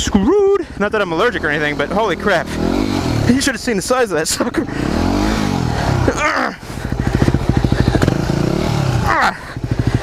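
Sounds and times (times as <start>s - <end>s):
motorcycle engine revving and chugging: 1.1s - 10.0s.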